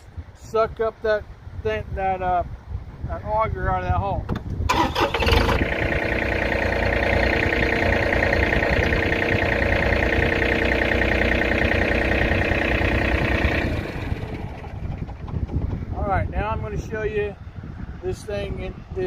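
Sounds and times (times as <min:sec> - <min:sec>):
tractor diesel engine running: 0:04.3 - 0:16.9.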